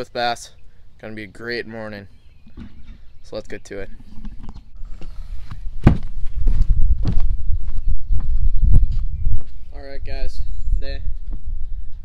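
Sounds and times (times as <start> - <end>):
loud low microphone rumble: 4.7 - 12.0
footsteps on deck: 5.4 - 9.6.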